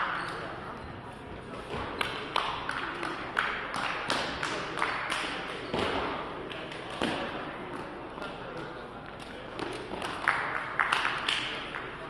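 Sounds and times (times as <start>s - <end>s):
voices in echoing hall: 0.0s - 12.0s.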